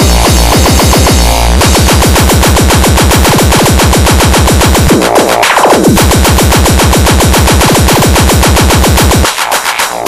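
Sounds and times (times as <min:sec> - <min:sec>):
fast distorted kick drums: 0:00.0 - 0:10.0.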